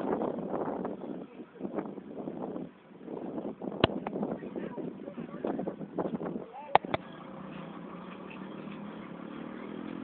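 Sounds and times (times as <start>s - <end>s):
wind buffeting microphone: 0.0s - 7.0s
sharp click: 6.8s - 7.0s.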